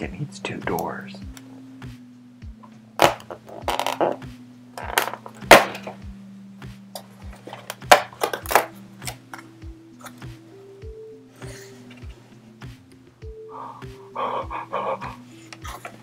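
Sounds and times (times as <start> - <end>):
background music with steady beat: 0.0 - 16.0.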